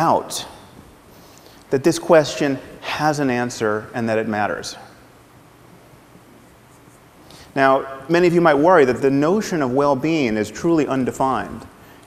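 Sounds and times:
faint even hiss: 0.0s - 12.0s.

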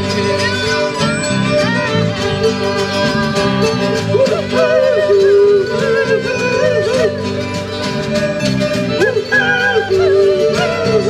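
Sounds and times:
acoustic guitar: 0.0s - 11.0s
fiddle: 0.0s - 11.0s
mandolin: 0.0s - 11.0s
person singing: 0.1s - 7.5s, 8.9s - 11.0s.

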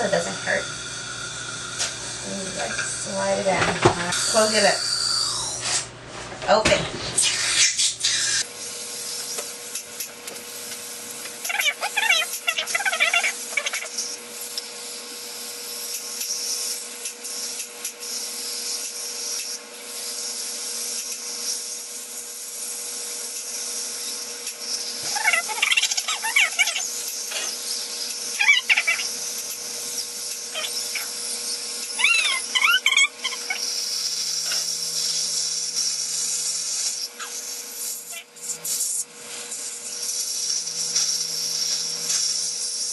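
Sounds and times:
dental polishing handpiece whine: 0.0s - 5.9s, 7.1s - 42.9s.

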